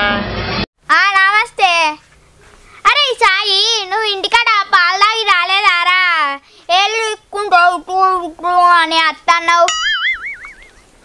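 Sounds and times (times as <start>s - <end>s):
child singing: 3.3s - 9.7s.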